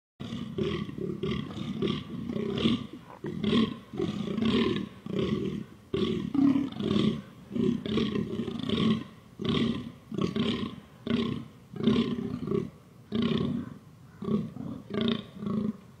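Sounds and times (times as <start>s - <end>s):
deer hoarse belching calls: 0.2s - 15.8s.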